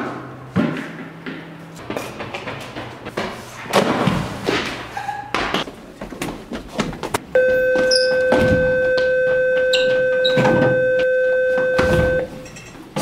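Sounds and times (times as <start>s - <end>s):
thumps and shuffles: 1.9s - 12.5s
electronic bell buzzing: 7.4s - 12.4s
knocks and squeaks: 7.4s - 13.0s.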